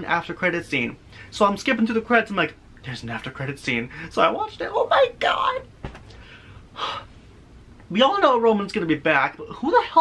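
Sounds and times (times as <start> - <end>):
man breathing: 6.1 - 7.3.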